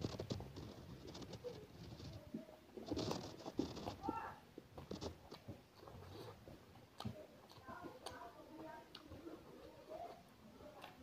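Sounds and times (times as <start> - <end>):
chewing with wet mouth clicks: 5.2 - 11.0.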